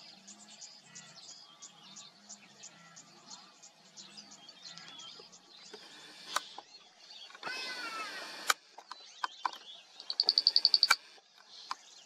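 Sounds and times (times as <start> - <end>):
bird rapid high trill: 10.0 - 11.0.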